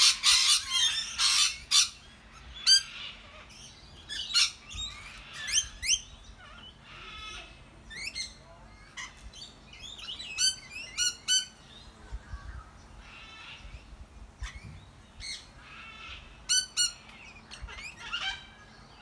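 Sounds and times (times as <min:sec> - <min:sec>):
parrots screeching: 0:00.0 - 0:08.1, 0:15.3 - 0:18.6.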